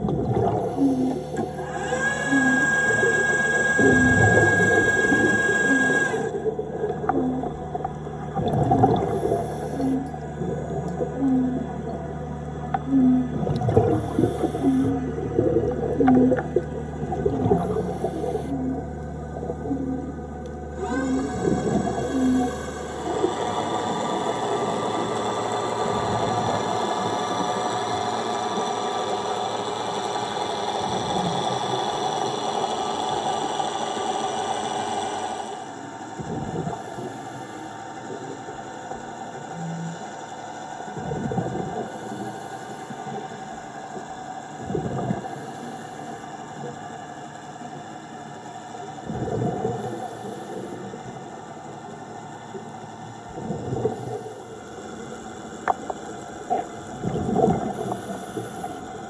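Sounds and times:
underwater thruster whine: 0.0 - 59.0.

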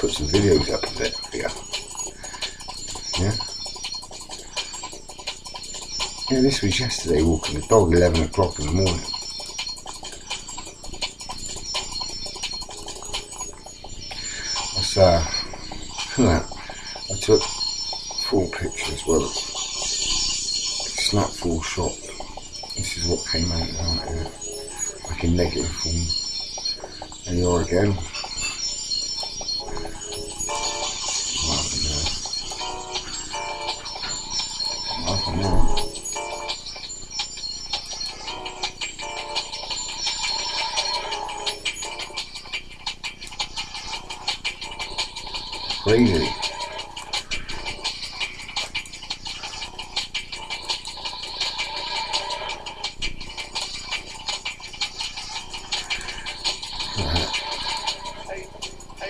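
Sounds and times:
busy ticking: 0.0 - 59.0
music with jingling bell notes: 0.0 - 59.0.

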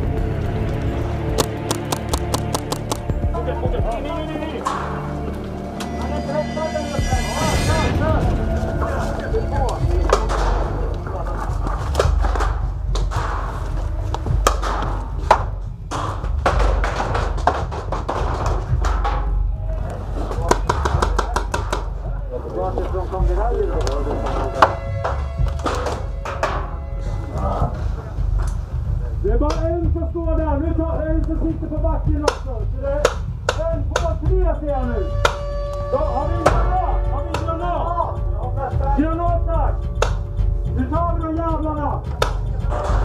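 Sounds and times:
indistinct voices: 0.0 - 17.4
paintball markers firing: 1.4 - 3.1.

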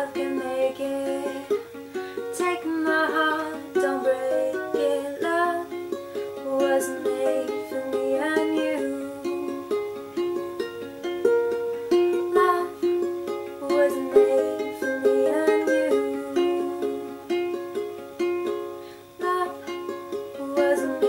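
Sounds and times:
ukulele playing chords: 0.0 - 21.0.

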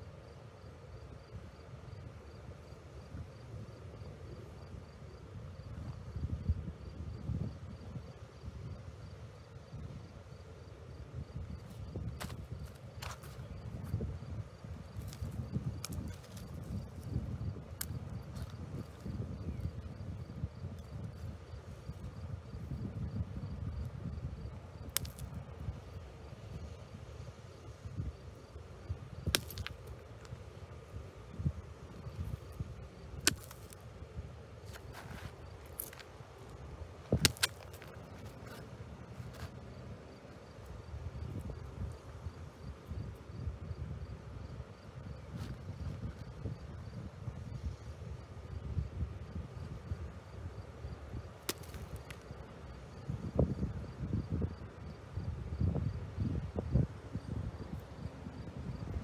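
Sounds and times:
wind buffeting microphone: 11.1 - 36.0.

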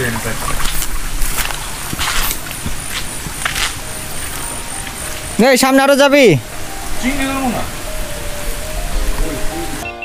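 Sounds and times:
stream running over rocks: 0.0 - 10.0
background music: 1.3 - 10.0.

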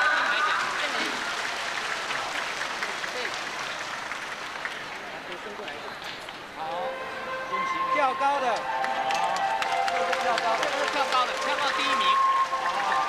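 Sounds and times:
crowd applause: 0.0 - 6.0, 8.6 - 13.0.

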